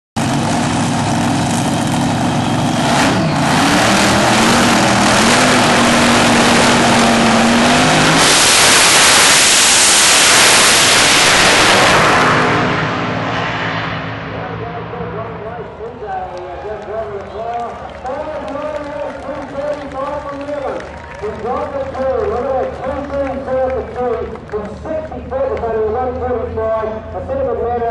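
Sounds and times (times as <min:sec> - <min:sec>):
dragster engines idling: 0:00.2 - 0:08.0, 0:14.4 - 0:27.7
dragster engines full throttle blast: 0:00.2 - 0:27.3.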